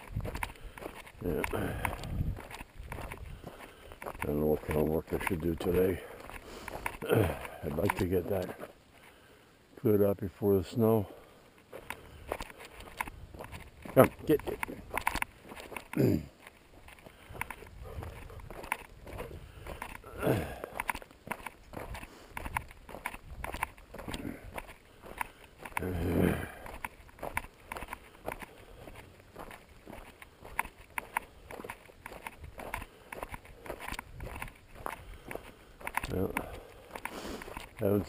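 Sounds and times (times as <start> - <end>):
footsteps crunching on gravel: 0.0 - 9.1, 9.8 - 38.0.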